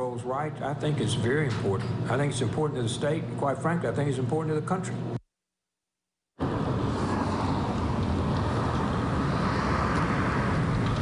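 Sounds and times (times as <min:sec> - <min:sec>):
street traffic noise: 0:06.4 - 0:11.0.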